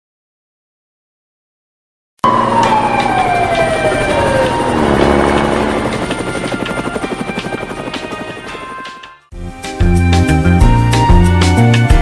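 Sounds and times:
tone gliding down in pitch: 2.2 - 7.2
helicopter rotor beating: 2.2 - 9.2.

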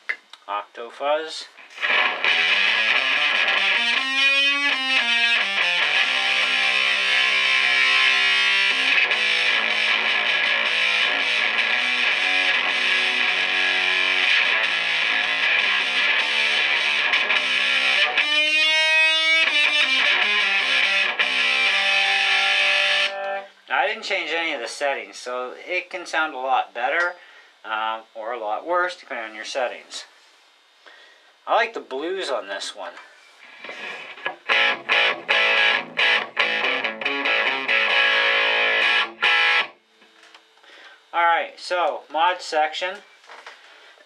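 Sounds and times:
distorted electric guitar: 1.5 - 25.8, 33.4 - 43.6.

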